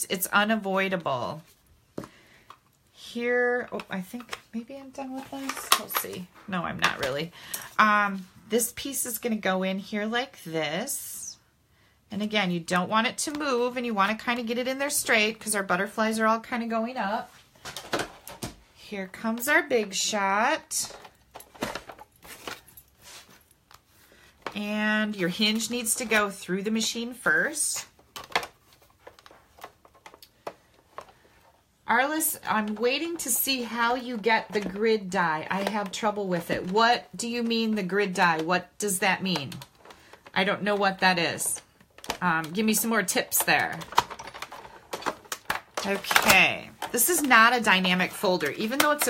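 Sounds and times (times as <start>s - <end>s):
plastic folder rustling: 3.6s - 7.3s, 17.2s - 18.6s, 19.3s - 49.0s.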